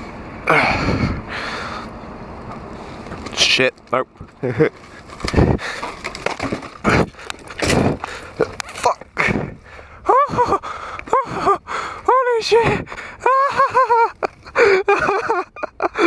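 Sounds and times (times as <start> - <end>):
rider gasping: 0.5 - 2.0, 4.8 - 6.2, 6.8 - 13.3, 14.5 - 14.9
bike crashing and tumbling: 4.4 - 9.6.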